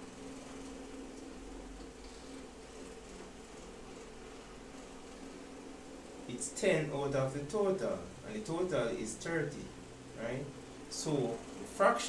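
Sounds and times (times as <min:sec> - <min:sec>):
low hum with hiss: 0:00.0 - 0:12.0.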